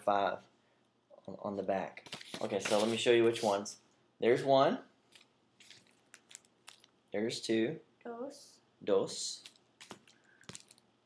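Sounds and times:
paper cards shuffling: 0:02.0 - 0:03.6, 0:05.1 - 0:06.9, 0:09.4 - 0:10.8.

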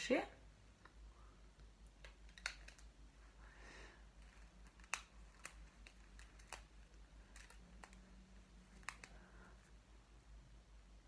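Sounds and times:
hair elastic clicks and snaps: 0:01.6 - 0:03.0, 0:04.2 - 0:09.2.

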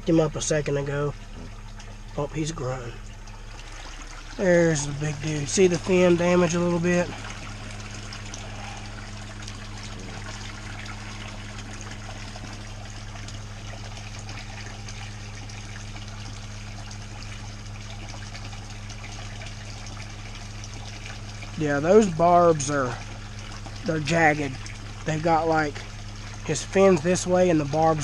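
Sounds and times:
constant low hum: 0:00.0 - 0:28.0
water splashing into pond: 0:00.0 - 0:28.0.

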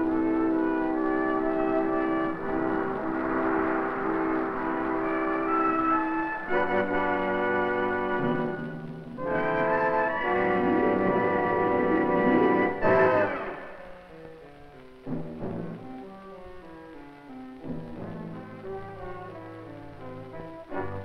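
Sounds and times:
orchestral music with brass chords: 0:00.0 - 0:14.2, 0:17.3 - 0:21.0.

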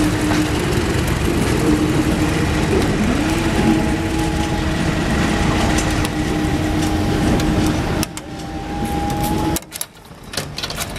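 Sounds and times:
diesel locomotive engine drone: 0:00.0 - 0:10.9
whistle-like tone: 0:06.2 - 0:09.6.

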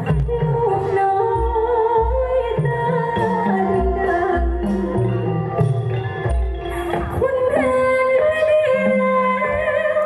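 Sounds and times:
woman singing through microphone: 0:00.0 - 0:05.6, 0:06.8 - 0:10.0
amplified backing music: 0:00.0 - 0:10.0.

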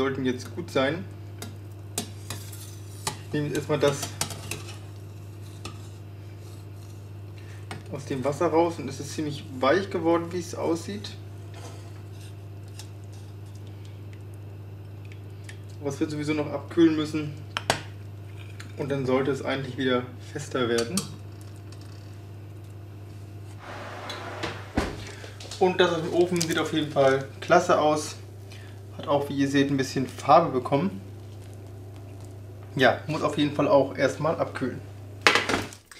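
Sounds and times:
steady low hum: 0:00.0 - 0:35.5
soft rushing noise: 0:23.6 - 0:25.2.

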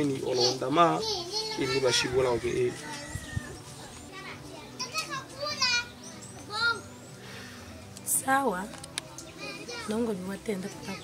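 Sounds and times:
children shouting while playing: 0:04.8 - 0:05.9.

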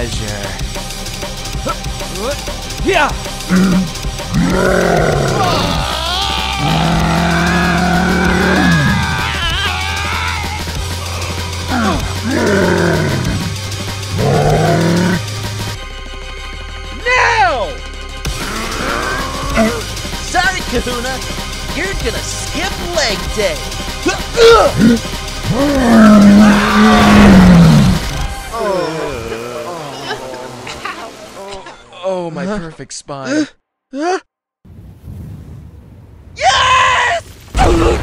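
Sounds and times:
background music: 0:00.0 - 0:33.4
loud held vocal cry: 0:03.5 - 0:13.5, 0:24.4 - 0:30.4.

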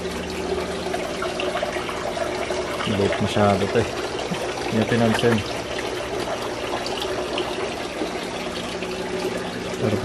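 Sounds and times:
low steady hum: 0:00.0 - 0:10.0
water splashing into aquarium: 0:00.0 - 0:10.0.

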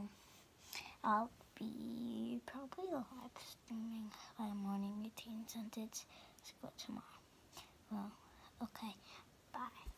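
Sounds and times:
girl speaking softly: 0:00.8 - 0:09.9.

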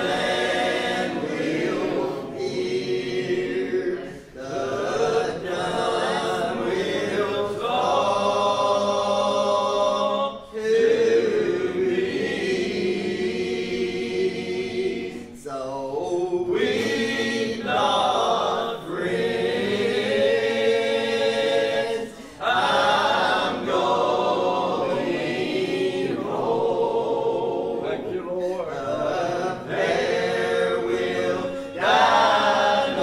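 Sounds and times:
group singing a hymn: 0:00.0 - 0:33.0.

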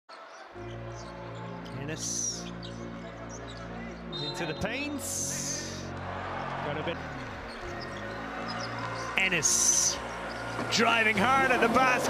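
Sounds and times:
low background music: 0:00.5 - 0:12.0.

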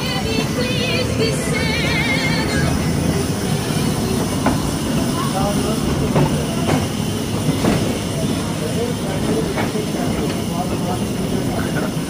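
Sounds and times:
ride train rumbling on track: 0:00.0 - 0:12.0.

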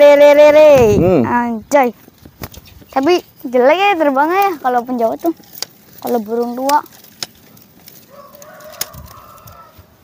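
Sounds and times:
rooster crowing: 0:08.0 - 0:10.0.

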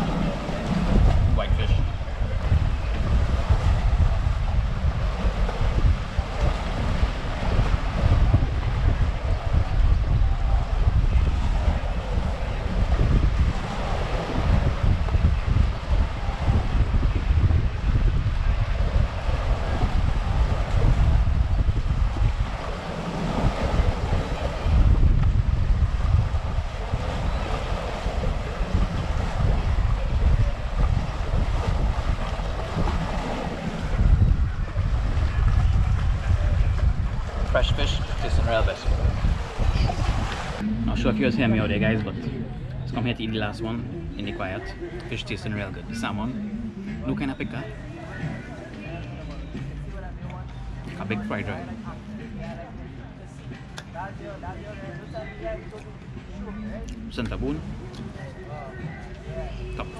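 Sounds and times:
waves washing against shore: 0:00.0 - 0:52.8
wind buffeting microphone: 0:00.0 - 0:59.9.

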